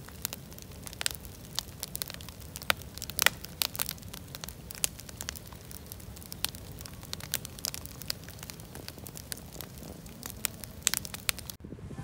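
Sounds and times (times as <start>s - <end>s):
campfire crackling and popping: 0.0s - 11.6s.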